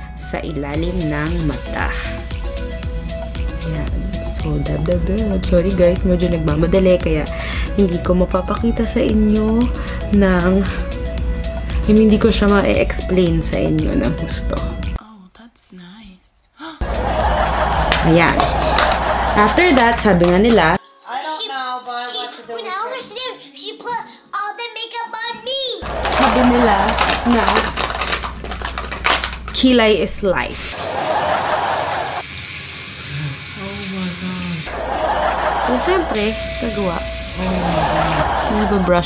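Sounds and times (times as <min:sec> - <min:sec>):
loud music: 0:16.8 - 0:20.8, 0:25.8 - 0:28.0, 0:34.7 - 0:39.0
steady rushing hiss: 0:30.8 - 0:39.0.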